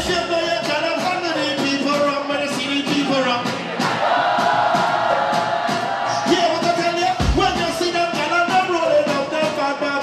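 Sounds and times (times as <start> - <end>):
live soca music: 0.0 - 10.0
crowd singing and chanting: 2.6 - 7.6.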